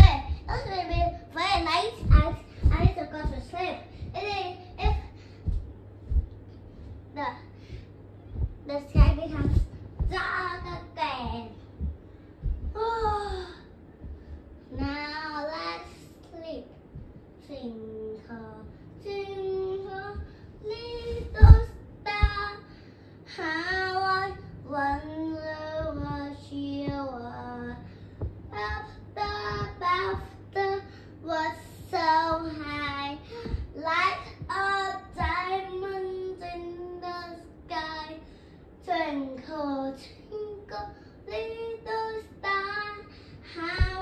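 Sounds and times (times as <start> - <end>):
child singing: 0.0 - 6.2, 8.4 - 11.9, 12.5 - 13.6, 14.7 - 16.8, 17.4 - 22.7, 23.3 - 27.9, 28.5 - 44.0.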